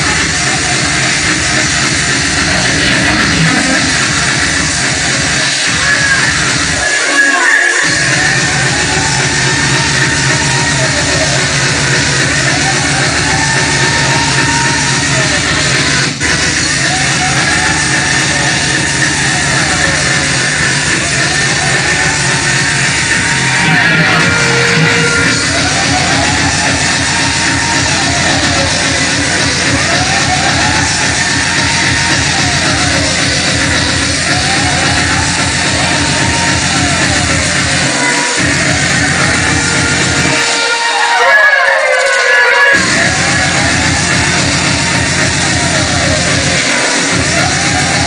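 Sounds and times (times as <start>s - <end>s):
fast kick drums: 0.0s - 6.8s, 7.8s - 40.4s, 42.8s - 48.0s
distorted electronic dance music: 0.0s - 48.0s
synth sweep: 7.8s - 41.1s.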